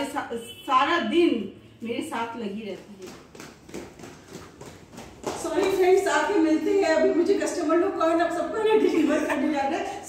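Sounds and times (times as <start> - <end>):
footsteps going down stairs: 2.7 - 6.2.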